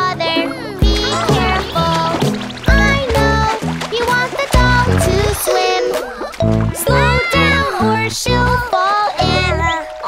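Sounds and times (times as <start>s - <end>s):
children's song with beat: 0.0s - 10.0s
cartoon water splash: 0.8s - 8.0s.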